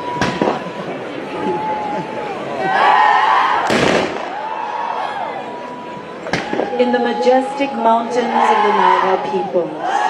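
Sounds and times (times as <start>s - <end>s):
voices shouting and whooping: 0.0s - 10.0s.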